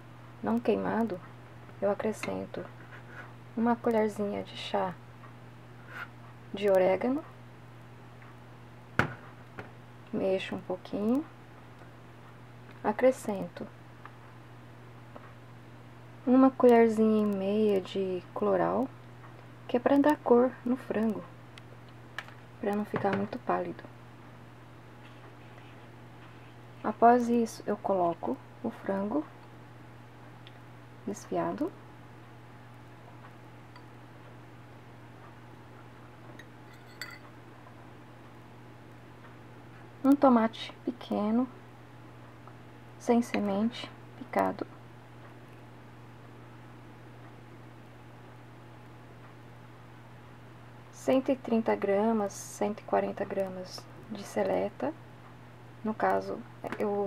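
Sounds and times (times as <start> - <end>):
steady low hum: 0.0 - 57.0
ceramic bowl clacking on steel: 36.4 - 37.2
metal utensil clinking on cookware: 36.7 - 37.2.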